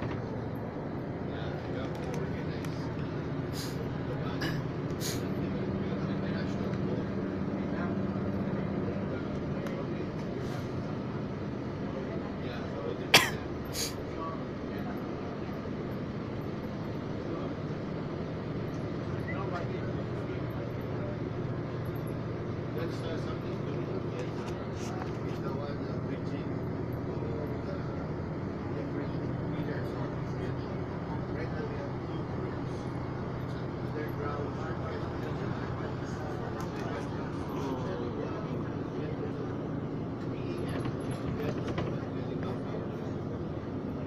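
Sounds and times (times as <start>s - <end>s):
bus engine and road hum: 0.0s - 44.0s.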